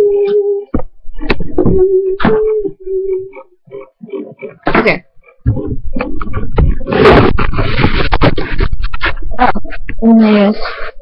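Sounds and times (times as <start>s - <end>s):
microphone handling scraping and rubbing: 5.5s - 11.0s.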